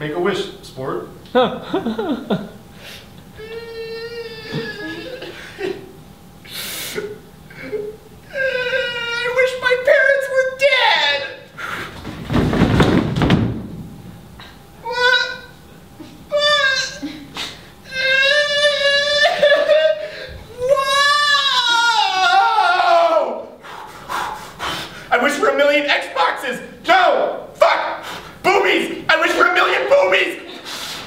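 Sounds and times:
person wailing like a cat: 3.4s - 5.4s, 7.6s - 9.6s, 14.8s - 15.5s, 16.3s - 17.3s, 17.9s - 23.4s
man yelling: 8.6s - 11.5s, 16.3s - 17.1s, 20.6s - 23.5s, 25.1s - 30.6s.

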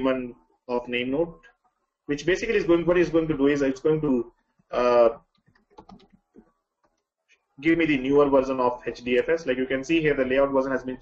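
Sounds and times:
keyboard typing clicks: 5.3s - 7.1s.

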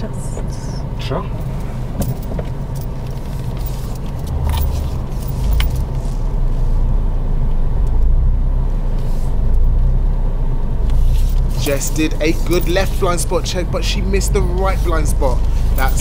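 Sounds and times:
car engine and road noise: 0.0s - 16.0s.

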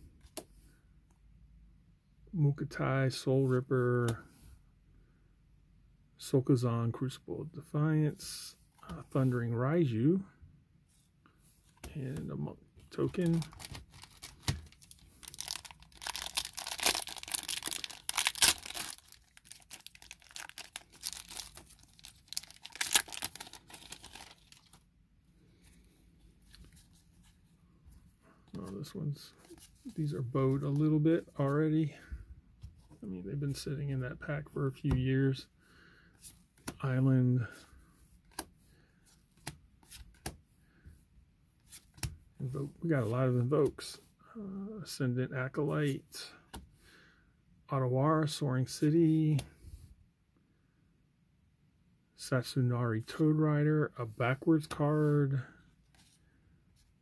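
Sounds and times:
foil wrapper crinkling and tearing: 13.2s - 24.8s.

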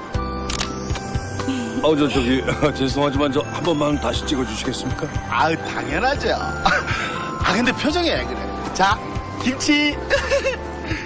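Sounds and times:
background music: 0.0s - 11.0s
camera shutter click: 0.4s - 1.1s
person speaking: 1.5s - 2.9s.

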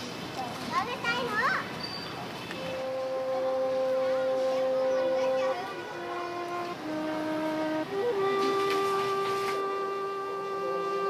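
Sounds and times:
children calling: 0.7s - 11.0s
many voices: 2.2s - 6.8s
long steady note: 2.6s - 11.0s.

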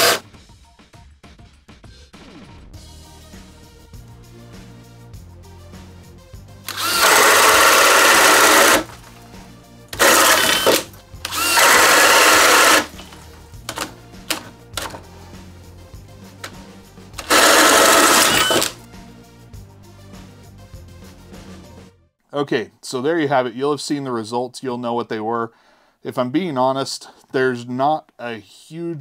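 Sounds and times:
hammer drill boring into wood: 0.0s - 0.2s, 6.7s - 9.0s, 10.0s - 15.0s, 17.2s - 18.8s
background music: 0.0s - 22.2s.

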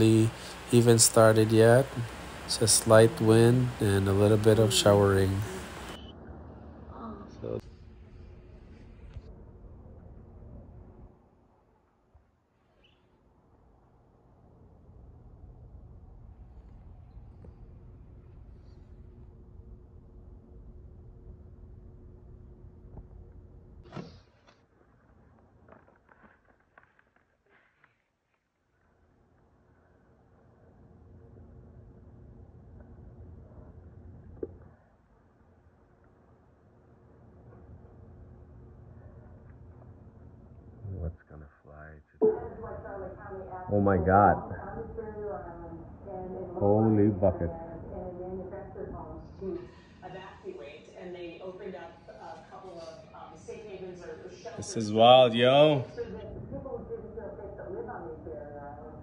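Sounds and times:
faint steady hum: 0.0s - 59.0s.

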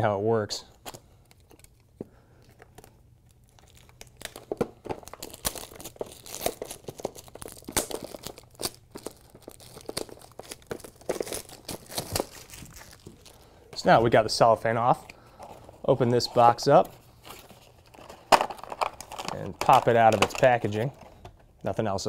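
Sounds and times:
packaging crinkling and tearing: 0.8s - 13.6s, 15.3s - 21.2s.

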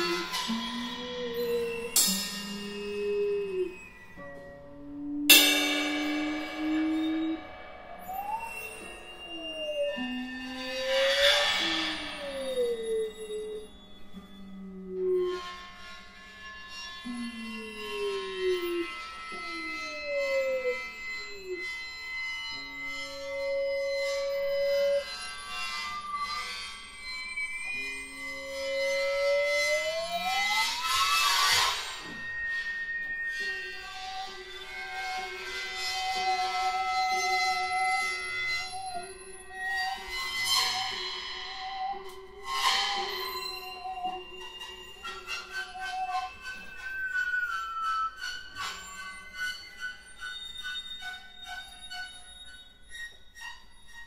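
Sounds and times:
improvised piano percussion and harp: 0.0s - 4.2s, 5.3s - 9.2s
sharp struck attack ringing: 5.3s - 8.6s.

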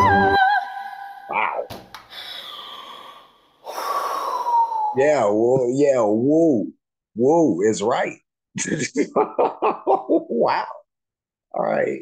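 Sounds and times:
woman breathy exhale: 2.1s - 5.0s
breathy whoo sliding down: 3.6s - 5.0s.

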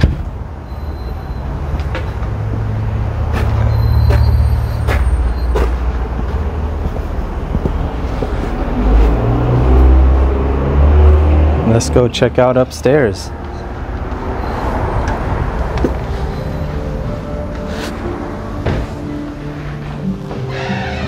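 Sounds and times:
heavy vehicle engine hum: 0.0s - 21.0s
footsteps on paving: 1.8s - 9.2s.

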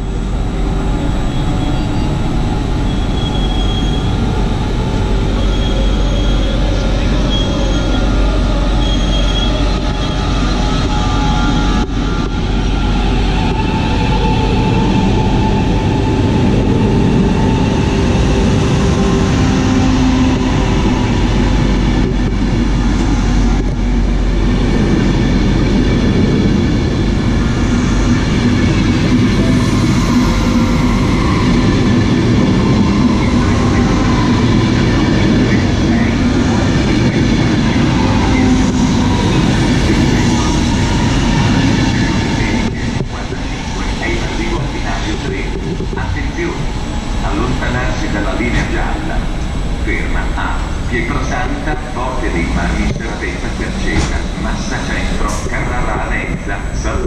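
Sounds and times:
train wheels rolling on rails: 0.1s - 57.0s.

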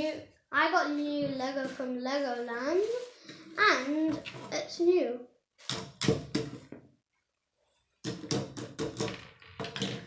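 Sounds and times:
plastic pieces clattering on wood: 8.1s - 10.0s.

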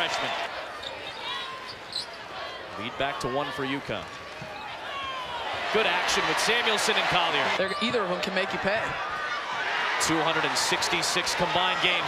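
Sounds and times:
faint arena background noise: 0.0s - 12.0s.

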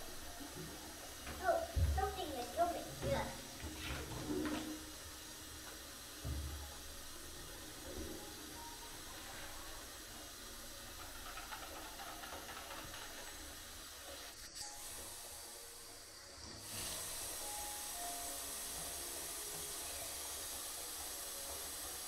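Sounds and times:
water hissing in foamy bath: 0.0s - 22.0s.

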